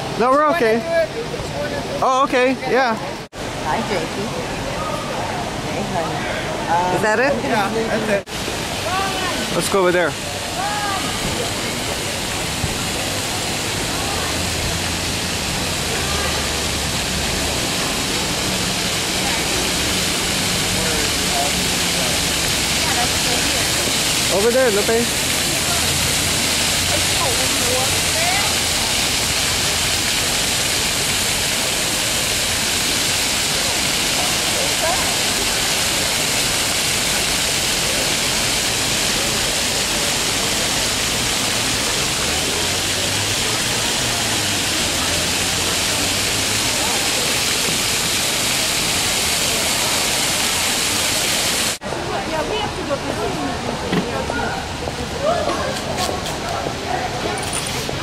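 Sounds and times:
faint voices: 0.0s - 58.0s
fountain jets splashing on stone: 0.0s - 58.0s
street sound: 0.0s - 58.0s.

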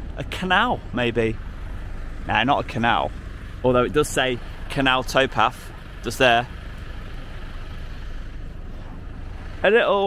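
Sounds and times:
low rumble: 0.0s - 9.8s.

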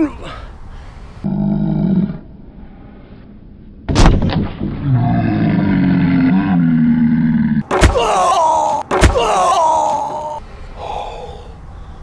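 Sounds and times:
loud thud: 3.9s - 4.9s
man yelling in pain: 7.7s - 11.1s.

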